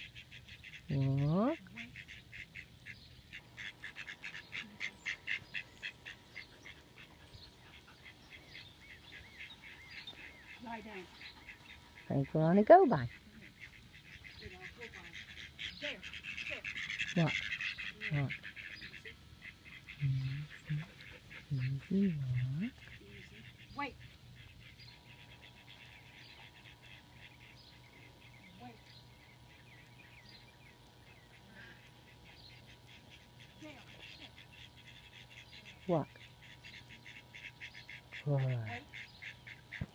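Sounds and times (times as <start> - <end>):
ducks quacking: 0.0 - 39.9.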